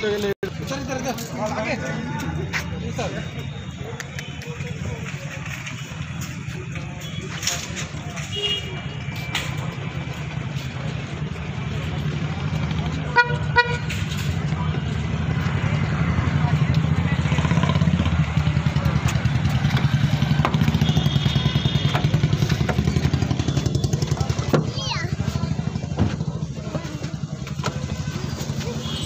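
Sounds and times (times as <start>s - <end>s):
vehicle engine running: 9.7s - 29.0s
horn toots: 13.1s - 14.1s, 20.6s - 22.7s.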